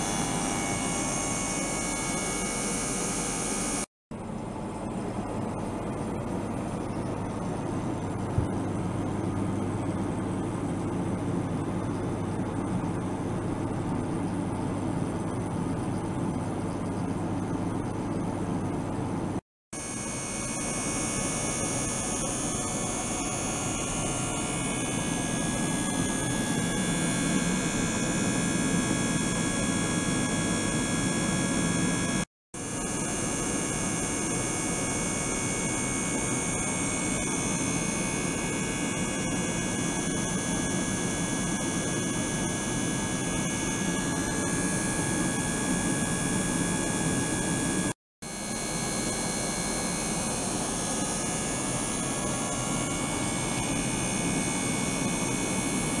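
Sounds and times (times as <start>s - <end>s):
high-pitched steady tones: 0.0s - 3.9s
small water pump running: 0.0s - 18.2s, 19.8s - 56.0s.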